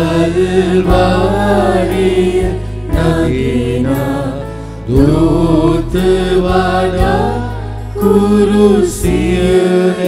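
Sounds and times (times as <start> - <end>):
hymn singing: 0.0 - 10.0
sustained instrumental accompaniment: 0.0 - 10.0.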